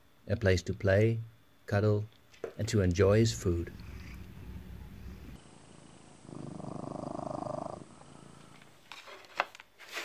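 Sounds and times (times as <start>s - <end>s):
cat purring: 3.0s - 8.8s.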